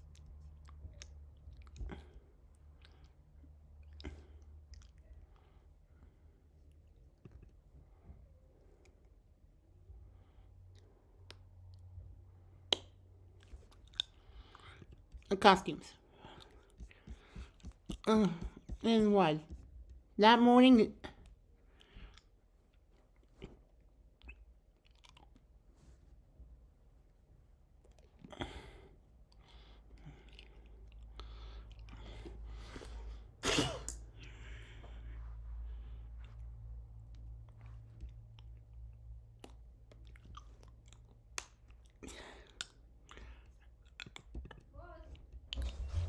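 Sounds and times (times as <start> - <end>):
low hum: 45.0 - 46.0.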